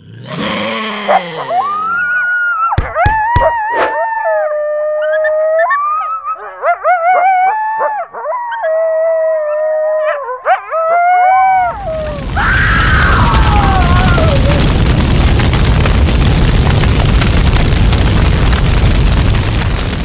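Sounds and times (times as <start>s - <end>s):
cartoon werewolf howling: 0.2s - 14.7s
whoosh of flames: 11.6s - 20.0s.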